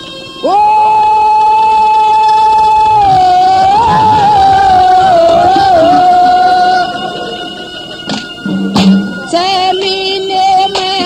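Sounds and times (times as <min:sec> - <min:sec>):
woman singing: 0:00.0 - 0:07.5, 0:09.2 - 0:11.0
faint drum accompaniment: 0:08.1 - 0:11.0.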